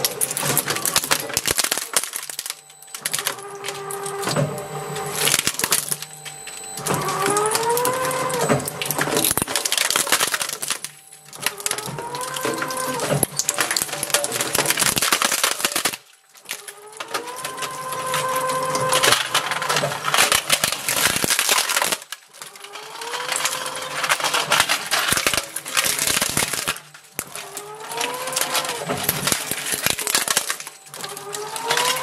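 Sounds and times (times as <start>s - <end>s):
plastic cracking: 0.0s - 32.0s
plastic squealing in shredder: 0.0s - 32.0s.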